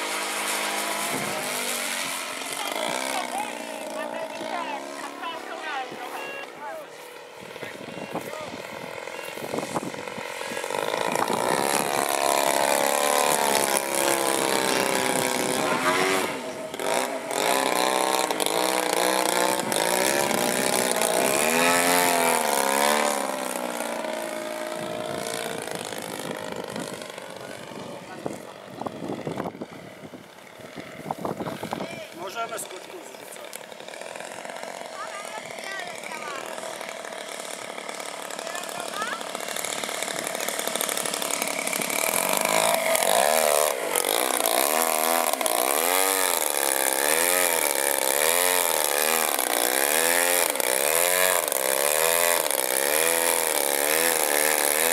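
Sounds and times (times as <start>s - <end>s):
model plane engine and propeller: 0.0s - 54.9s.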